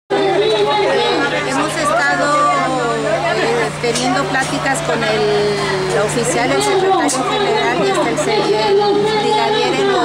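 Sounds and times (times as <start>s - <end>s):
steady low hum: 0.1s - 10.0s
woman speaking: 1.0s - 10.0s.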